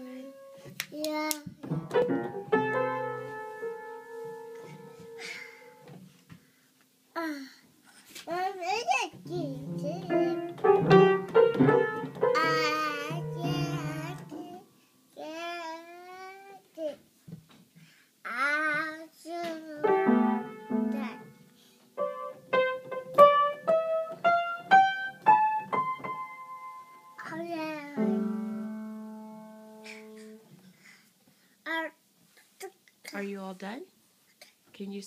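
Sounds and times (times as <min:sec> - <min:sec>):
upright piano notes: 0:00.0 - 0:00.8, 0:01.6 - 0:06.0, 0:09.2 - 0:14.7, 0:19.5 - 0:30.5
toddler singing: 0:08.3 - 0:10.6, 0:12.3 - 0:17.0, 0:18.3 - 0:20.0, 0:20.8 - 0:21.4, 0:27.2 - 0:28.7
piano keys struck: 0:10.0 - 0:12.6.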